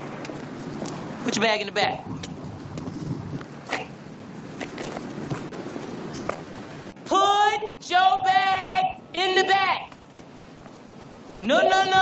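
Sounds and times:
steady noisy hiss: 0.0s - 12.0s.

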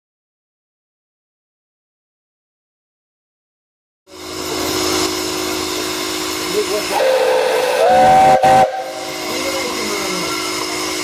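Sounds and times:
steam hissing from locomotive: 4.1s - 11.0s.

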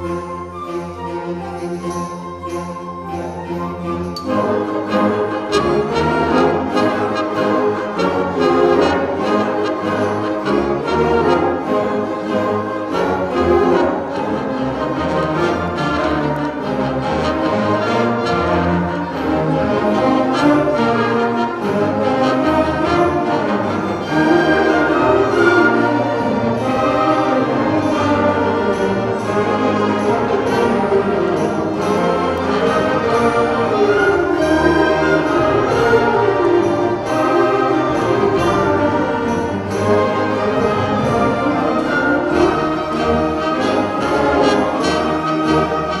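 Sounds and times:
brass: 0.0s - 46.0s
string basses: 0.0s - 46.0s
woodwinds: 0.0s - 46.0s.

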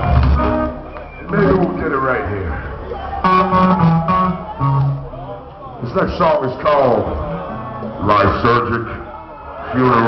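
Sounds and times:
electric guitar held notes: 0.0s - 1.2s, 3.2s - 5.2s.

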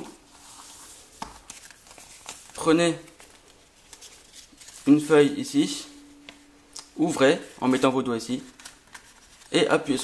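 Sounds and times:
paper rustling: 0.3s - 5.2s, 7.2s - 10.0s.

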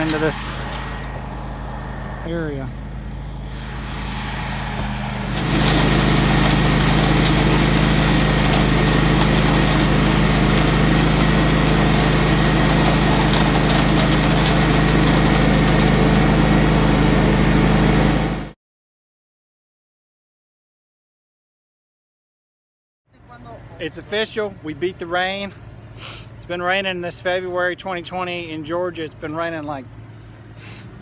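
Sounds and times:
wet concrete pouring down chute: 0.0s - 0.8s, 5.2s - 16.3s
diesel engine running: 0.0s - 18.5s, 23.2s - 31.0s.

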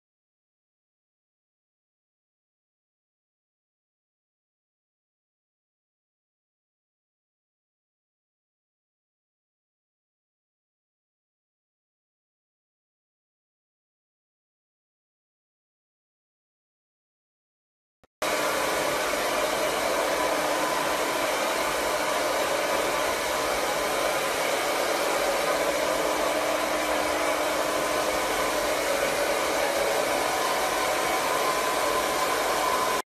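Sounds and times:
electric blow dryer running: 18.2s - 33.0s.

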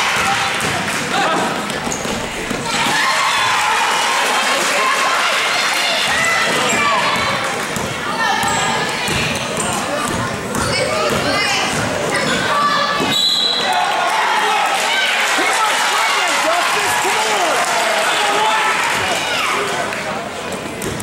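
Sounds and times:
people shouting in a gym: 0.0s - 19.8s
basketball bouncing on wooden floor: 7.2s - 11.9s.

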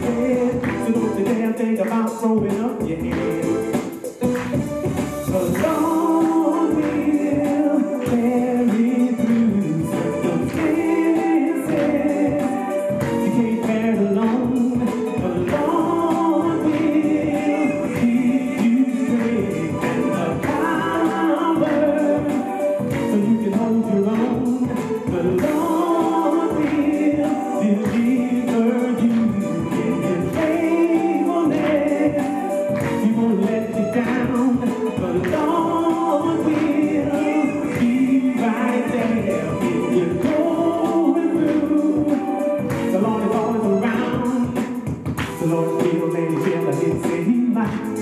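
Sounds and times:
man singing gospel song: 0.0s - 4.3s, 5.2s - 48.0s
musical accompaniment: 0.0s - 48.0s
choir holding long notes: 5.6s - 13.3s, 25.2s - 32.7s.

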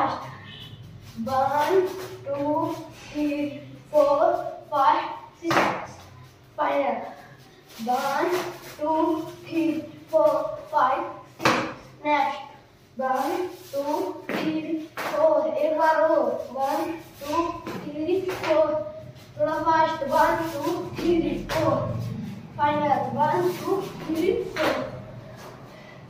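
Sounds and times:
young voice speaking: 0.0s - 0.5s, 1.2s - 25.1s.

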